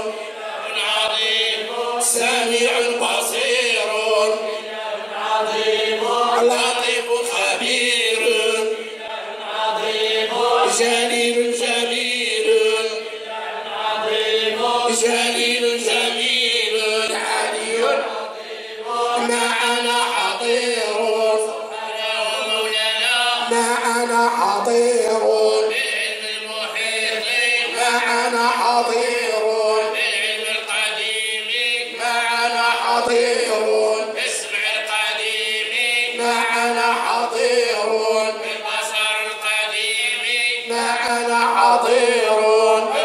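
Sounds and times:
men chanting in unison: 0:00.0 - 0:43.0.

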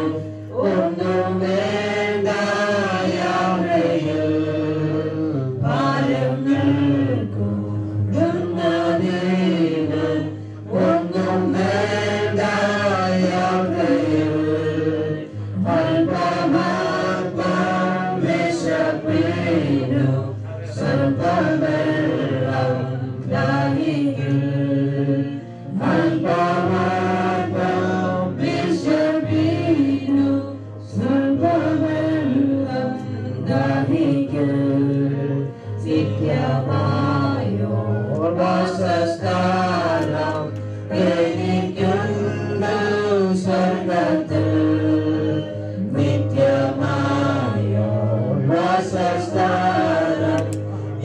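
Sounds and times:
group of voices singing: 0:00.0 - 0:51.0.

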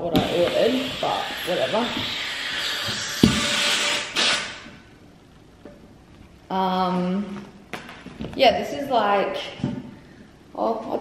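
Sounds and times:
air hissing out of a valve: 0:00.3 - 0:04.6.

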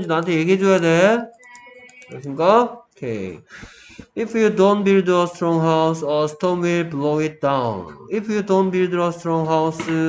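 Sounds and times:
man talking: 0:00.0 - 0:01.4, 0:02.1 - 0:10.0.

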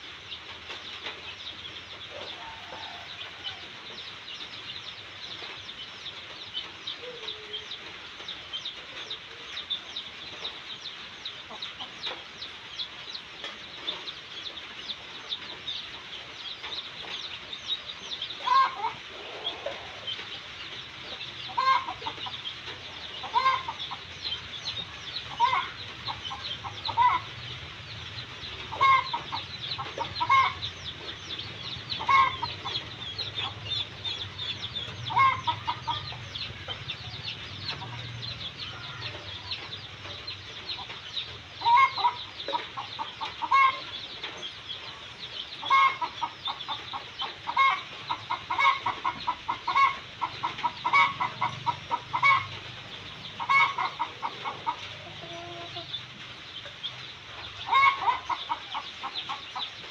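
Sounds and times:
chicks peeping: 0:00.0 - 0:59.9
louder lower chick calls: 0:18.2 - 0:20.2, 0:21.1 - 0:27.5, 0:28.4 - 0:39.8, 0:41.6 - 0:44.1, 0:45.6 - 0:56.0, 0:57.6 - 0:59.7.

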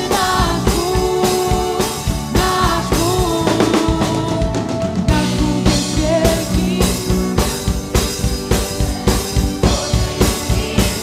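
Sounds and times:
people singing: 0:00.0 - 0:07.8, 0:08.5 - 0:11.0
bass: 0:00.0 - 0:11.0
drum kit beat: 0:00.0 - 0:11.0
guitar: 0:00.0 - 0:11.0.

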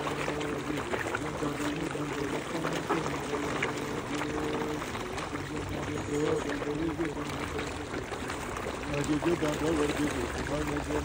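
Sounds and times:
pond water splashing: 0:00.0 - 0:11.0.

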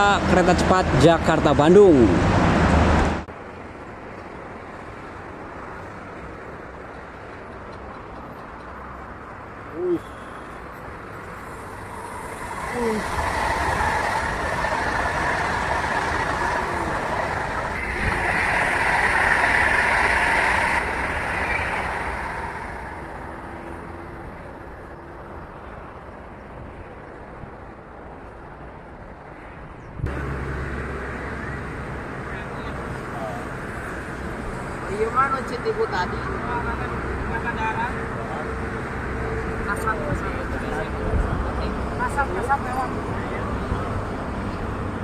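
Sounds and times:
high-speed train passing: 0:00.0 - 0:45.0.

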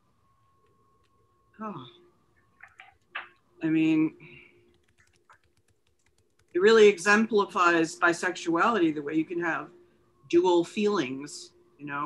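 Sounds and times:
faint steady hum: 0:00.0 - 0:12.0
computer keyboard typing: 0:02.5 - 0:03.4, 0:04.7 - 0:06.7.

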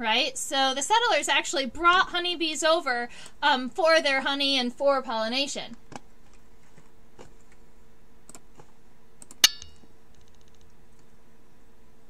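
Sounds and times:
sharp clink with ringing tail: 0:09.4 - 0:09.8.

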